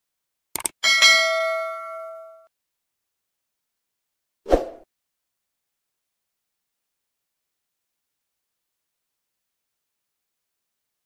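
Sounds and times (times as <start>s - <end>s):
notification bell ding: 0.8s - 2.5s.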